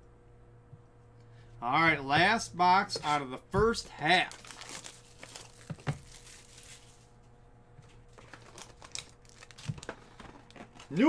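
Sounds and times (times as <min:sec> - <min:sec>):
foil and wrapping crinkling: 0:04.0 - 0:07.2, 0:08.1 - 0:11.0.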